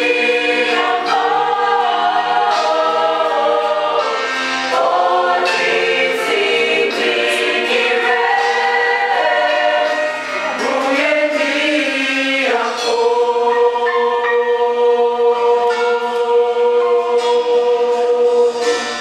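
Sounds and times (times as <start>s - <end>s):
mixed choir singing gospel: 0.0s - 19.0s.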